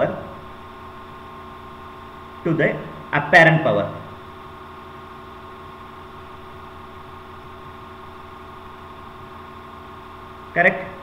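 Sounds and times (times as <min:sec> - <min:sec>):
electrical hum: 0:00.0 - 0:11.0.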